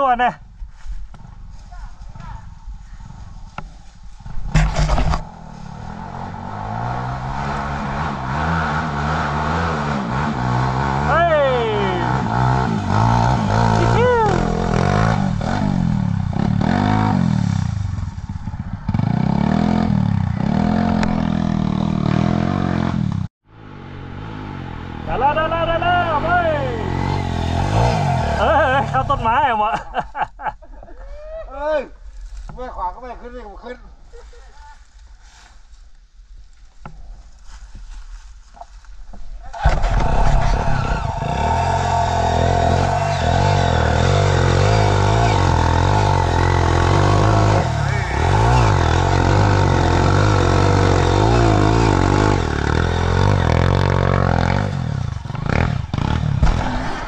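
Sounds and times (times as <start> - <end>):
dirt bike engines revving: 4.5 - 29.9, 39.5 - 57.0.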